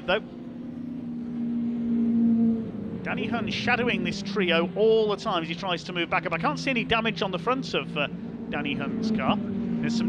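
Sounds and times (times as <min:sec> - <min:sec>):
racing truck engines passing: 0:00.0 - 0:10.0.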